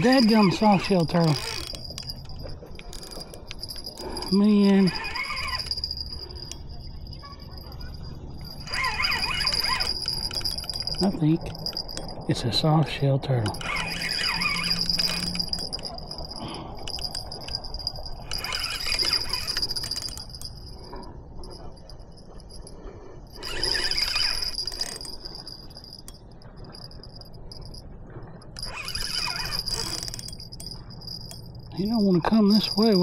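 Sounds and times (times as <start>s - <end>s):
fishing reel whirring: 0.0s - 12.7s, 13.4s - 33.0s.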